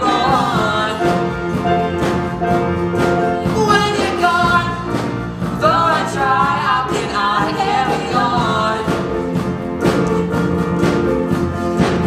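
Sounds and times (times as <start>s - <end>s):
instrumental accompaniment: 0.0s - 12.0s
person singing a pop ballad: 3.4s - 9.2s.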